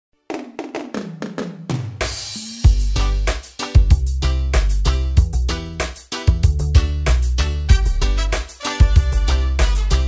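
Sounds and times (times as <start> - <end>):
drum fill on toms: 0.3 - 4.1.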